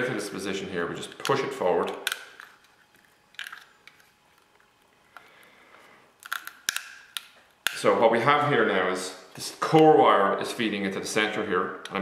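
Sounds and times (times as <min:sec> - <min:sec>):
plastic and wire clicks: 0:06.2 - 0:07.8.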